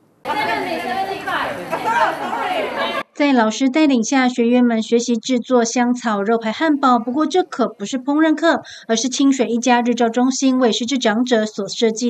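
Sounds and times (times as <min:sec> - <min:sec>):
group of young people chattering: 0:00.2 - 0:03.2.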